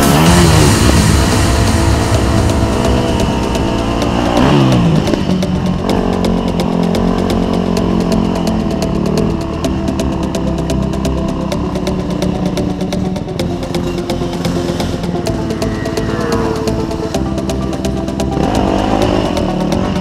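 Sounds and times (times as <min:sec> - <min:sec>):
dirt bike engine running: 0:00.0 - 0:20.0.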